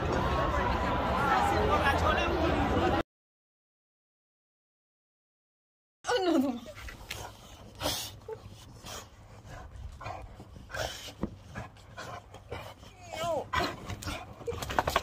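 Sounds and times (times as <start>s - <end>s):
dogs panting and snuffling: 6.6s - 15.0s.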